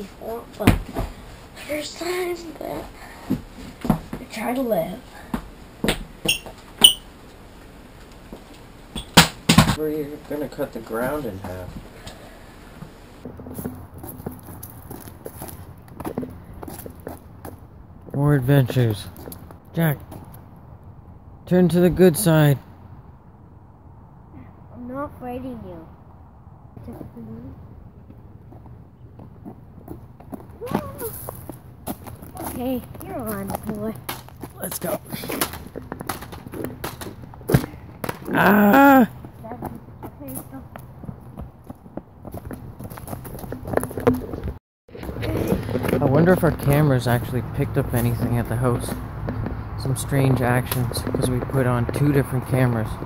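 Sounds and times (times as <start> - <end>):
footsteps on sidewalk: 0.2 - 20.7, 28.0 - 53.0.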